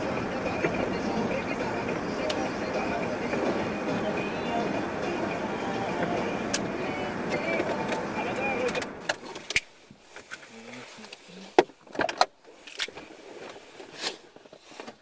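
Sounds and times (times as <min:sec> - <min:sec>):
car interior noise: 0:00.0 - 0:15.0
muffled voices: 0:00.4 - 0:09.0.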